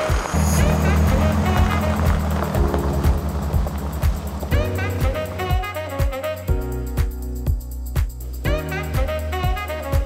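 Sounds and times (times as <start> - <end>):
music with beat and bass line: 0.0 - 10.0.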